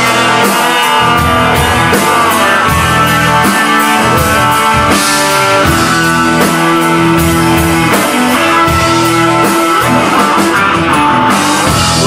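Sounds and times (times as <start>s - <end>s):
drum kit beat: 0.0s - 12.0s
electric guitars sustained notes: 0.0s - 12.0s.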